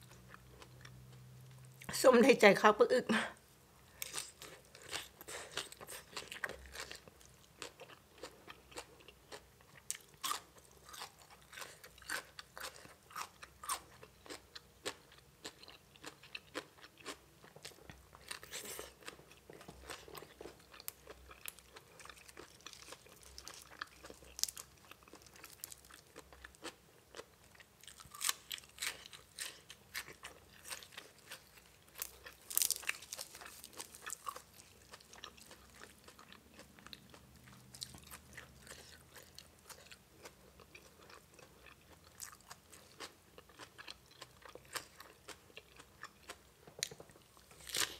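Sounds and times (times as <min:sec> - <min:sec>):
close crunchy chewing: 0:04.0 - 0:47.9.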